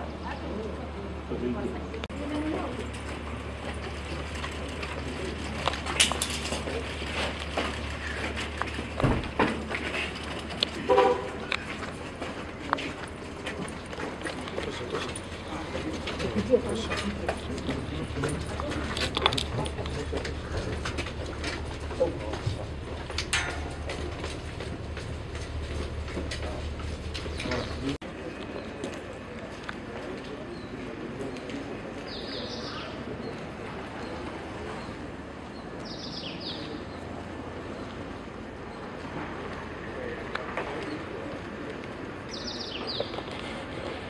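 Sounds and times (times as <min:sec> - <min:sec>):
outdoor background noise: 0:00.0 - 0:44.0
shoes clicking on pavement: 0:02.8 - 0:34.2, 0:39.4 - 0:44.0
steady low rumble: 0:02.9 - 0:28.0
footsteps on wooden stairs: 0:20.0 - 0:27.8.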